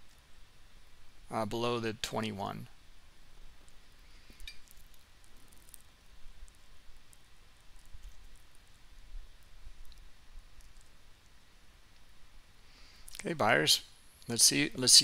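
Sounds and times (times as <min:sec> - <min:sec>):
low hum and hiss: 0:00.0 - 0:15.0
faint soft clicks: 0:09.4 - 0:12.2.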